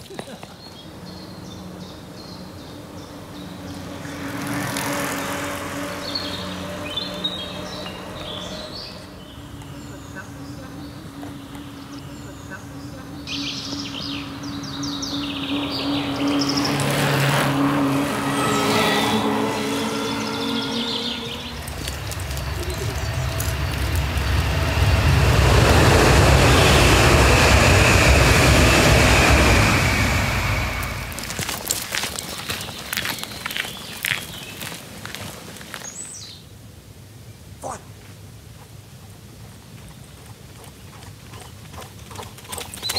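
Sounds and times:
road traffic passing: 0.0 - 36.9.

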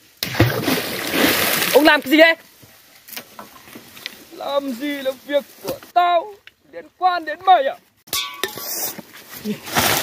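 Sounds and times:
earth splashing into water: 0.1 - 2.1.

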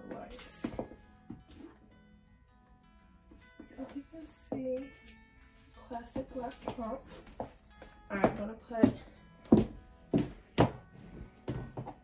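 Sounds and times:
high heels on wooden floor: 0.0 - 1.8, 5.8 - 12.0.

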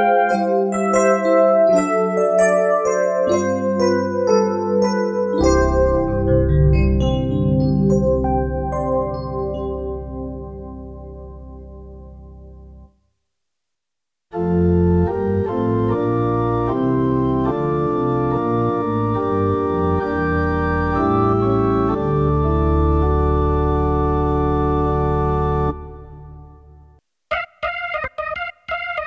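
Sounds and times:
digital piano organ chords: 0.0 - 12.9, 14.3 - 29.0.

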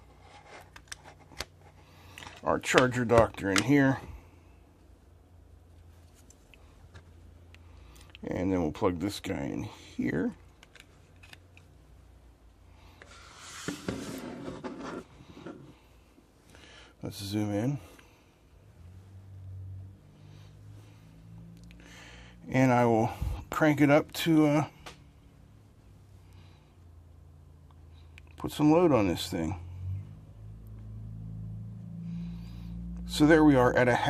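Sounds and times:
faint low hum: 0.0 - 34.0
hands rubbing and sliding gadgets: 13.0 - 15.7.

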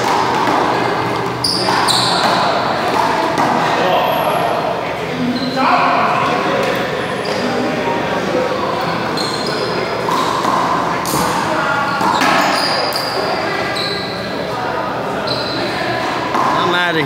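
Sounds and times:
indistinct echoing voices: 0.0 - 17.0.

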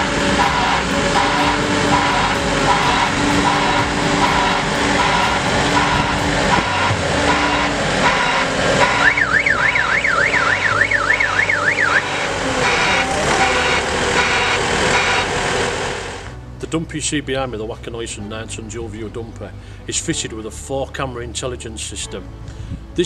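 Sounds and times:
warbling warning alarm: 0.0 - 16.3
dumper engine running: 0.0 - 16.6.

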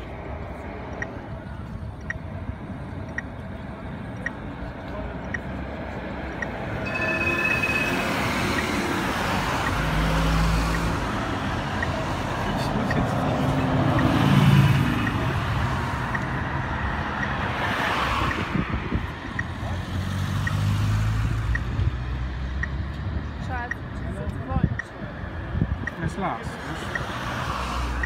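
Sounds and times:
tram rolling rumble: 0.0 - 20.1
street traffic: 0.0 - 28.0.

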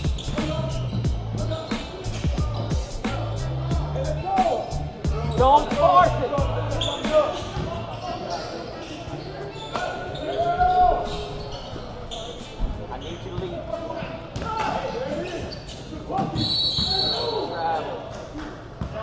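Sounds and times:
sneakers squeaking: 0.0 - 3.8, 4.4 - 19.0
low music: 0.0 - 7.3
people calling out: 0.0 - 8.0.

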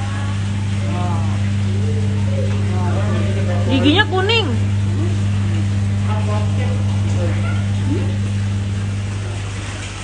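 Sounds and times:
circulating water: 0.0 - 10.0
low electric hum: 0.0 - 10.0.

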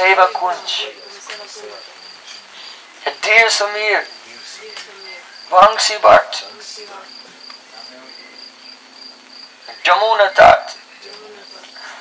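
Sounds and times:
man's voice: 0.0 - 2.0, 3.0 - 7.2, 9.7 - 11.6
cricket chirping: 0.0 - 12.0.

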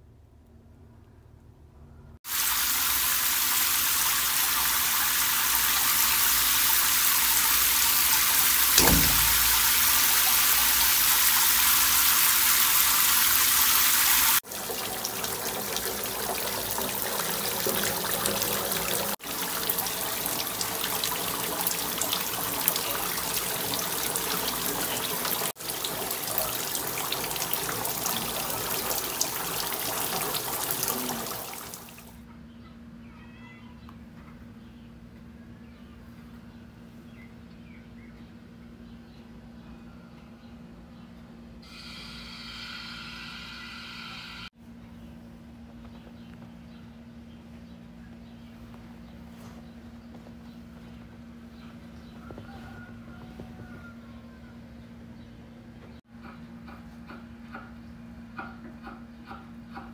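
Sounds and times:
water rushing into bathtub: 2.3 - 32.1
low thump: 8.8 - 9.8.

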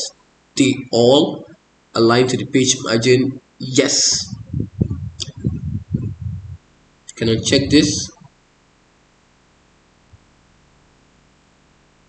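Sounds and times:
man mumbling: 3.6 - 6.5, 7.2 - 8.1.

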